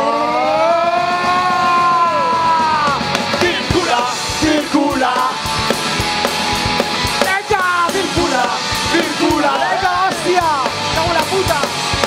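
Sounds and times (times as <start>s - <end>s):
live punk rock song: 0.2s - 12.0s.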